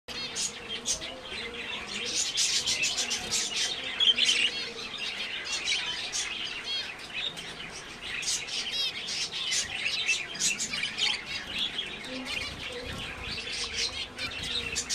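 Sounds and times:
finches chirping: 0.1s - 14.9s.

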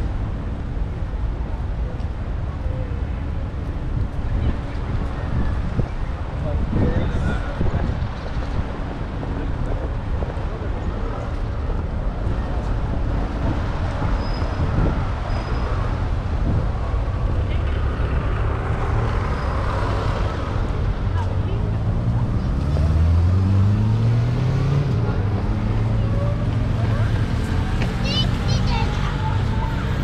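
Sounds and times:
city traffic rumble: 0.0s - 30.0s
vehicle engine accelerating past: 21.7s - 27.7s.

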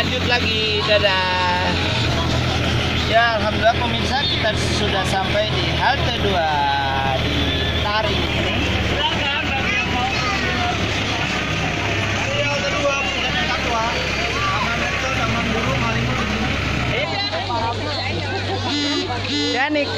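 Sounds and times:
people talking: 0.0s - 19.9s
vehicle engine humming: 0.0s - 19.9s.

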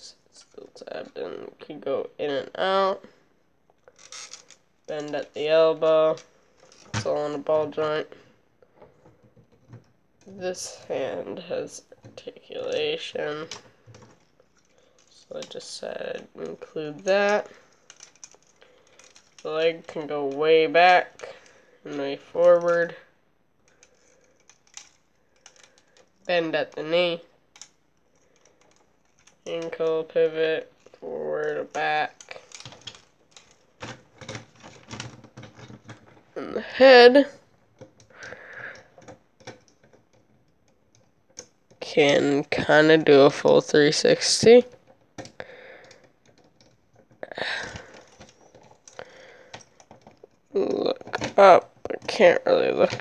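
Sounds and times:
plastic toy parts clicking: 3.8s - 7.8s, 11.7s - 23.0s, 23.6s - 53.0s.

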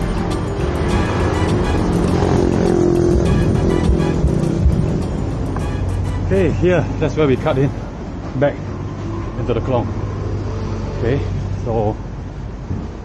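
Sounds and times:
background music with steady beat: 0.0s - 8.1s
road traffic: 0.0s - 13.0s.

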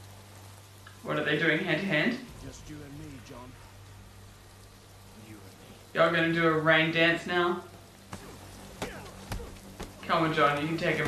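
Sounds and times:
heavy rain falling: 0.0s - 11.0s
fight blows hitting: 8.1s - 10.0s.

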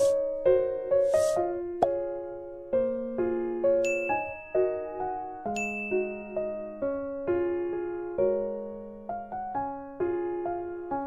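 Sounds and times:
soft electric piano music: 0.0s - 11.0s
bright chime dings: 3.8s - 4.6s, 5.6s - 6.4s.

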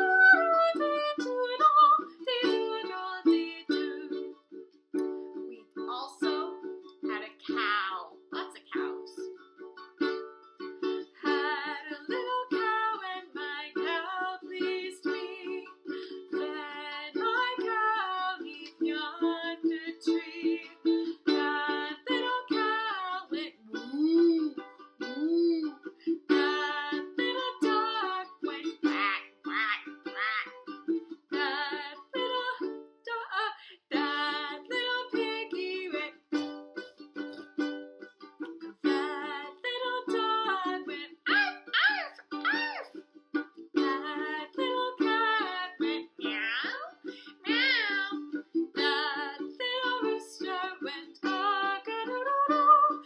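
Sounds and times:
woman singing: 0.0s - 4.4s, 5.6s - 9.3s, 11.0s - 24.4s, 26.1s - 36.6s, 38.8s - 43.0s, 43.8s - 53.0s
ukulele strumming: 0.0s - 53.0s.

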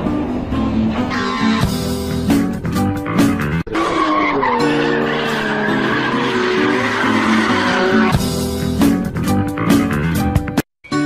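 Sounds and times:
race car tyres squealing: 0.9s - 2.0s, 3.7s - 8.4s.

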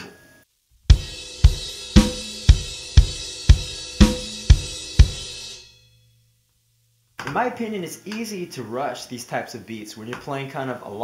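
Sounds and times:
drum kit playing straight beat: 0.8s - 5.8s
crash cymbals ringing: 0.9s - 6.3s.

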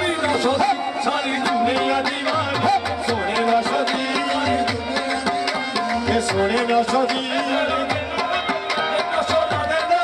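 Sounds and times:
harmoniums: 0.0s - 10.0s
tabla playing: 0.0s - 10.0s.

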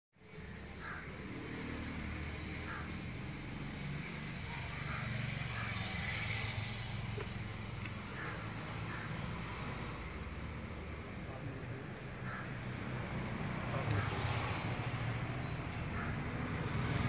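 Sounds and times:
distant road traffic rumble: 0.2s - 17.0s.

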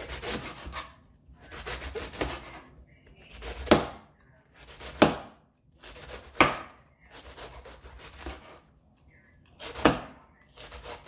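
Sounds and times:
knife chopping on cutting board: 0.0s - 2.6s, 3.3s - 8.6s, 9.6s - 11.0s
scraping on a cutting board: 0.0s - 3.8s, 7.1s - 8.7s.

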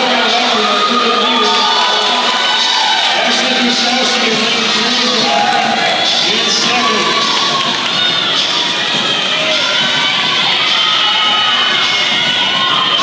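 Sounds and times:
crowd cheering and yelling: 0.0s - 13.0s.

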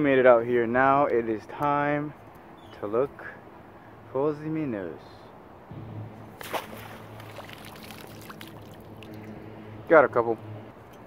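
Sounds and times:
steady low hum: 5.3s - 11.0s
water splashing: 6.1s - 9.5s
water dripping and trickling: 6.4s - 9.5s.

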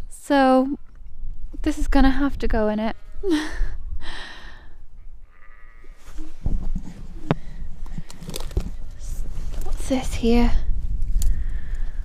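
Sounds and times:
twigs snapping: 7.8s - 8.8s.

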